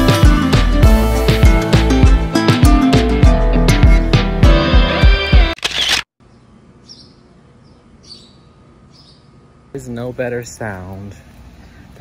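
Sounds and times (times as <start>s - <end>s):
background music: 0.0s - 5.6s
faint bird chirps: 6.2s - 9.4s.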